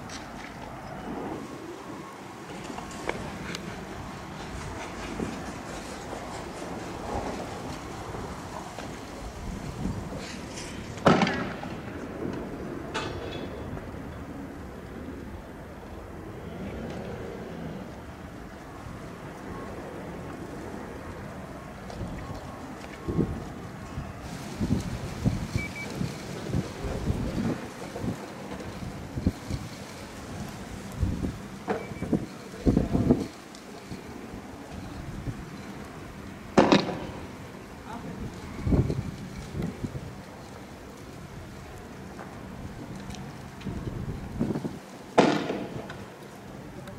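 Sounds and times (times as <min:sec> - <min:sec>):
wind buffeting microphone: 0:00.0 - 0:46.9
sharp crack: 0:10.2 - 0:13.7, 0:36.6 - 0:37.4, 0:45.1 - 0:46.2.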